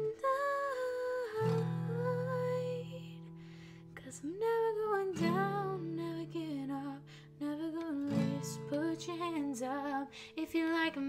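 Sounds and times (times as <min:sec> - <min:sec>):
acoustic guitar: 0:00.0 - 0:11.0
woman singing: 0:00.0 - 0:11.0.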